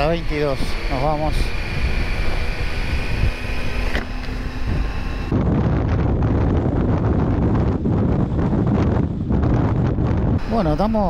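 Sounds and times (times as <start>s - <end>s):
motorcycle engine running: 0.0s - 11.0s
wind over microphone: 0.0s - 11.0s.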